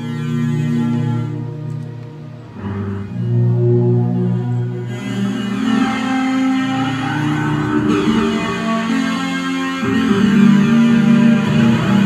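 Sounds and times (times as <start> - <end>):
ambient electric bass notes: 0.0 - 12.0.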